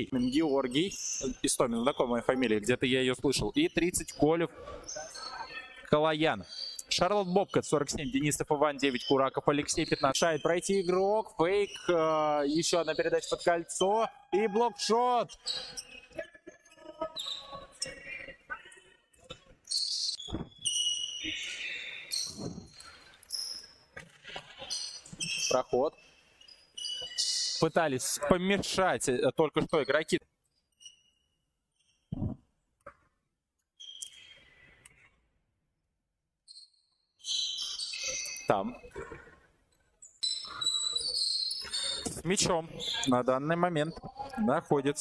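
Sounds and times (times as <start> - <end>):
shoe squeaks on gym floor: 3.6 - 5.8, 6.4 - 7.0, 8.9 - 14.0, 15.3 - 27.8, 29.6 - 33.0, 33.8 - 34.5, 36.5 - 39.3, 40.0 - 43.2
high-pitched shoe squeaks: 19.6 - 23.8, 26.4 - 27.7, 36.5 - 38.6, 40.1 - 43.1.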